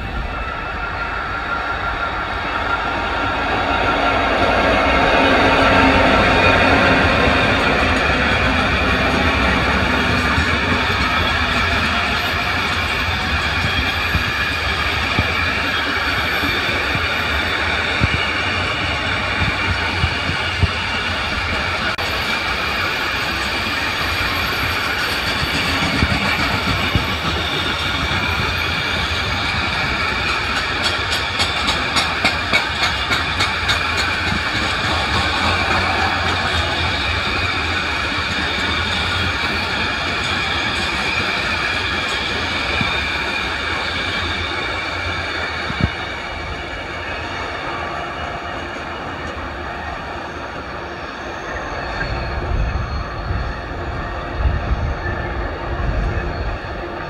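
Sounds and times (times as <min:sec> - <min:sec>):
freight train rumbling past: 0:00.0 - 0:57.0.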